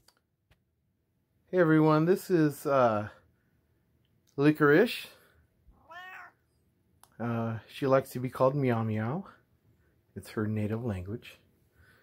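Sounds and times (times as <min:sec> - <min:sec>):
cat meowing: 0:05.8 - 0:06.5.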